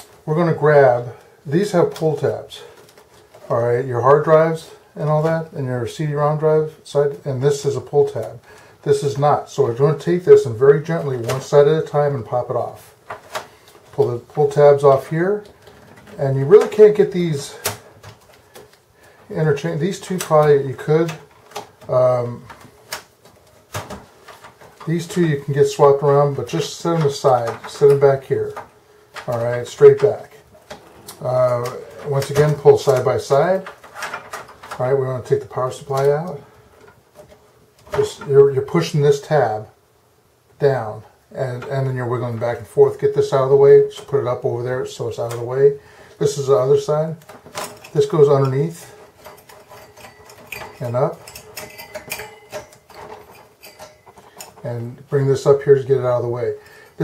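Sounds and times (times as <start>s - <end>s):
cables and connectors tapping metal: 19.7s - 38.3s, 46.2s - 57.0s.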